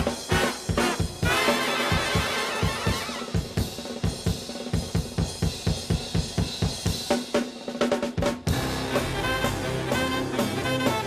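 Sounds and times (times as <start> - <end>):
big band with brass: 0.0 - 11.0
jazz drum kit with snare and cymbals: 0.0 - 11.0.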